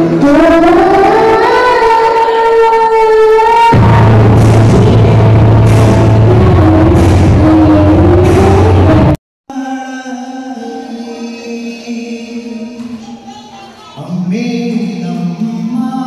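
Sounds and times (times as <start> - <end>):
girl singing into a microphone: 0.2 - 3.8, 12.6 - 14.1
backing track bass and drum beat: 3.7 - 9.2.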